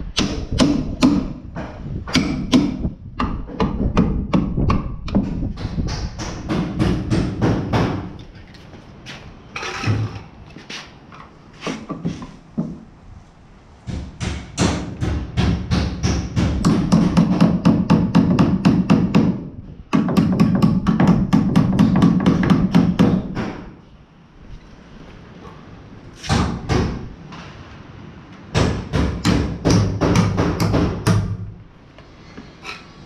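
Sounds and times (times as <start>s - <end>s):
hammer driving nails into wood: 0.2s - 8.1s, 13.9s - 23.7s, 28.6s - 31.4s.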